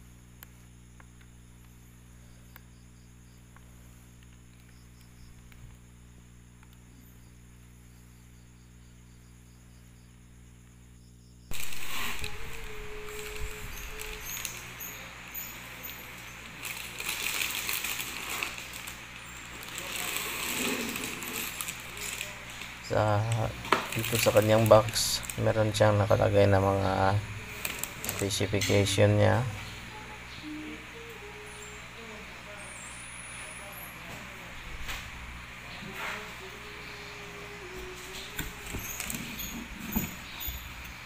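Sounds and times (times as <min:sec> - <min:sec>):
low electrical hum: 0:00.0 - 0:41.0
rustling plastic wrapping: 0:11.5 - 0:29.2, 0:37.6 - 0:40.9.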